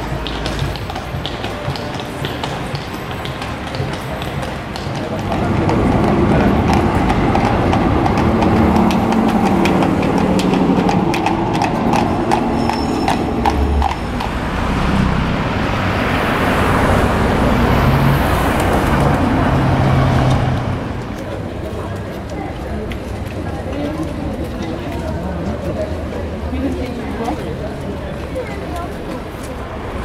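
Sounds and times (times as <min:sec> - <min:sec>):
horse hooves clip-clopping on street: 0:00.0 - 0:30.0
rushing traffic noise: 0:00.0 - 0:30.0
voices: 0:00.0 - 0:30.0
passing vehicle high whine: 0:05.0 - 0:21.6.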